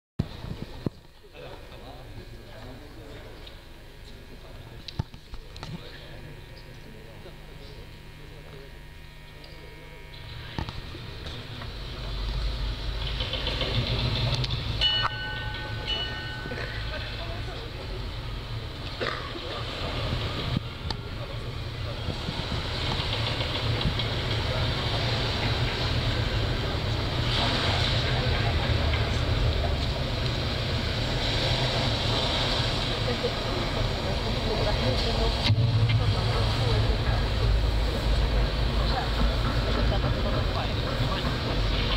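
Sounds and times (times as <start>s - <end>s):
distorted guitar drone: 1.4s - 41.9s.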